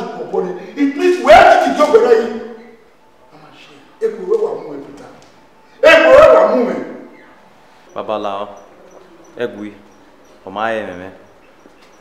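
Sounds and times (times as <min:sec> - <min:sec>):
man speaking loudly: 0:00.0 - 0:02.8, 0:05.8 - 0:07.1.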